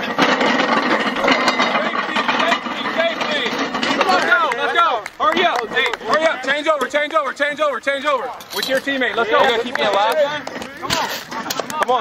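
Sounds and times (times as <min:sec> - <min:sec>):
steel sleds scraping across grass: 0:00.0 - 0:12.0.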